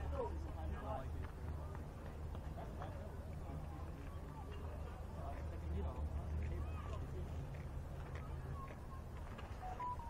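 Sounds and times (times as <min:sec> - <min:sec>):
distant voices chattering: 0:00.0 - 0:10.0.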